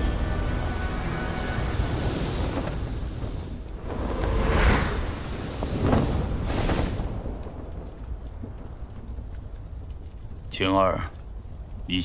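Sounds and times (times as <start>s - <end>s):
deep rumbling with rushing noise: 0.0s - 11.9s.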